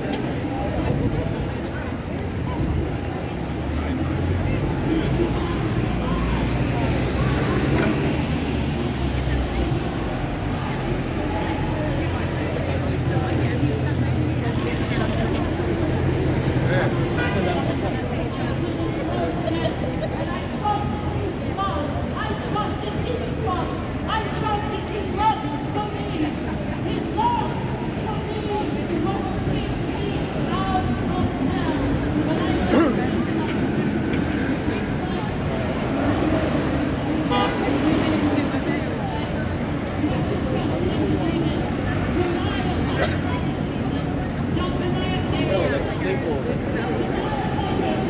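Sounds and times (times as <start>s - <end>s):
chatter of passers-by: 0.0s - 48.0s
road traffic engine hum: 0.0s - 48.0s.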